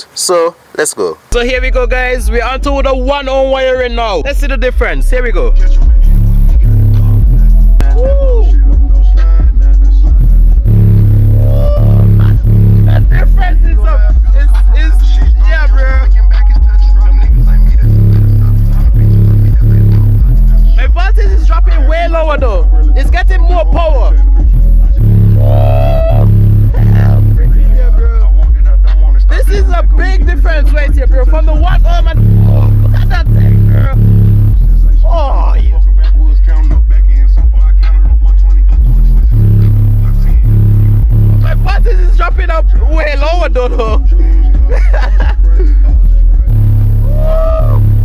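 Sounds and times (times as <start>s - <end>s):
melodic vocal line: 1.3s - 37.4s, 38.0s - 48.0s
deep bass: 1.3s - 48.0s
loud hip hop music: 1.3s - 48.0s.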